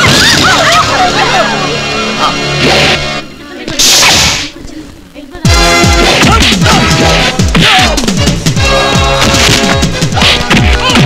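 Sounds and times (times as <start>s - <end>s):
fight music with falling low tones: 5.5s - 11.0s.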